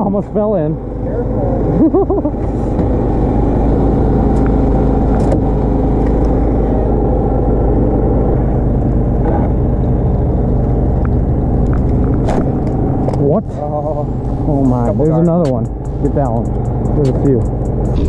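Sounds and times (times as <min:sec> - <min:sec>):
small engine running: 0:13.5 - 0:18.0.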